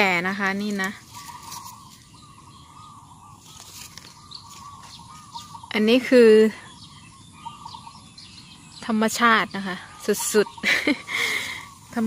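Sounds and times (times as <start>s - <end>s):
woman speaking: 0.0s - 1.1s, 5.7s - 6.6s, 8.8s - 10.6s
faint bird chirping: 0.0s - 12.0s.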